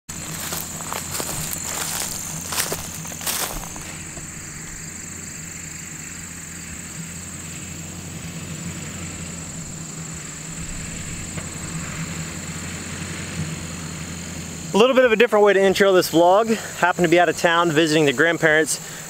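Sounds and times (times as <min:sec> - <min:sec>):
high-pitched insect drone: 0:00.1 - 0:15.2
engine idling: 0:00.1 - 0:19.0.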